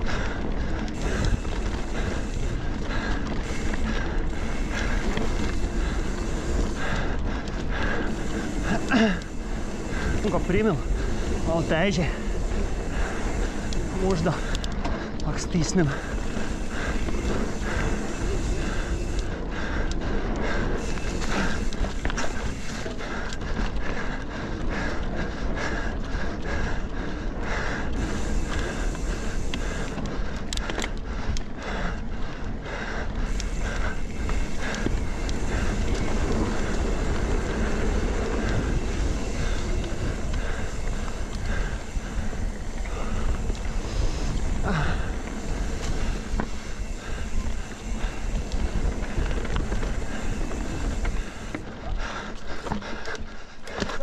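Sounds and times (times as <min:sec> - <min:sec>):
tyres rolling over dirt: 0:00.0 - 0:25.2, 0:27.8 - 0:31.6, 0:32.4 - 0:52.8
wind buffeting microphone: 0:00.0 - 0:53.4
bike rattling and clicking: 0:00.0 - 0:54.0.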